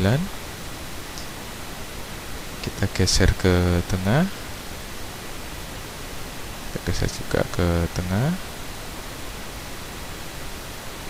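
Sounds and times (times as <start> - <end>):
man speaking: 0.0 - 0.3, 2.6 - 4.4, 6.8 - 8.4
microphone hiss: 0.0 - 11.0.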